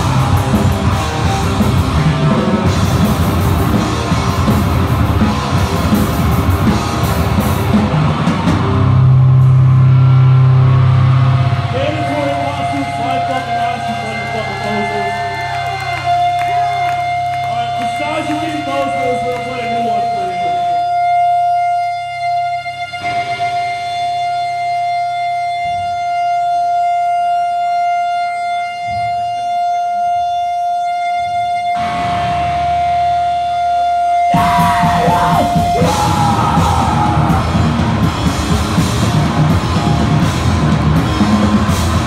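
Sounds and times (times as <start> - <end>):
distorted electric guitar note: 0.0 - 42.0
person shouting: 34.3 - 37.7.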